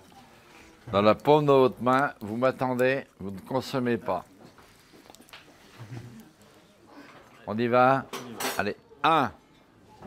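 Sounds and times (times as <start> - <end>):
faint low voice murmur: 5.5 - 7.4.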